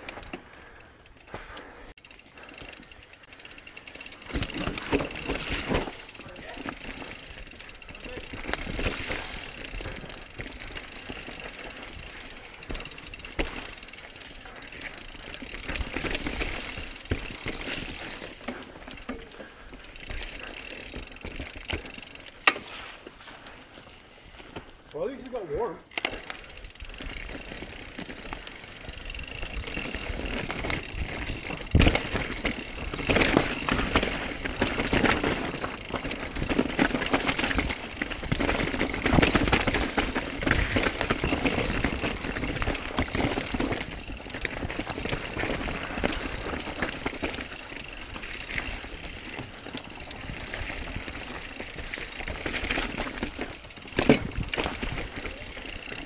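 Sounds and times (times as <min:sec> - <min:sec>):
bike knocking and rattling: 0:00.0 - 0:56.0
bike tyres rolling over dirt: 0:00.0 - 0:56.0.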